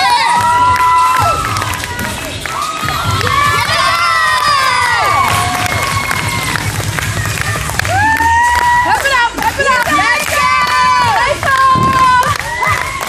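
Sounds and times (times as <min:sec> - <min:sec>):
children cheering and screaming: 0:00.0 - 0:09.2, 0:10.0 - 0:13.0.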